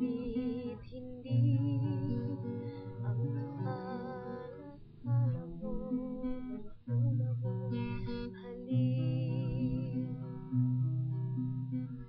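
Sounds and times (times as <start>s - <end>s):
person singing: 0.0s - 10.6s
acoustic guitar strummed: 0.0s - 12.0s.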